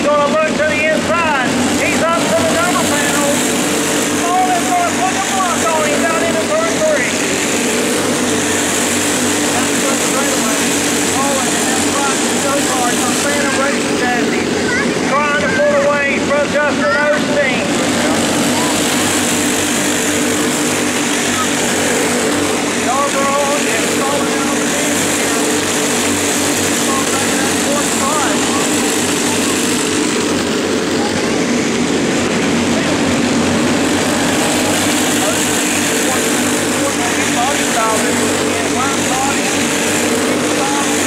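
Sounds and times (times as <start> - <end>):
racing kart engines: 0.0 - 41.0.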